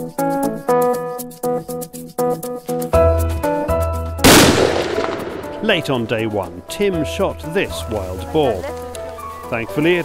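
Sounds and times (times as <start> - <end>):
background music: 0.0 - 10.0
rifle shot: 4.2 - 6.1.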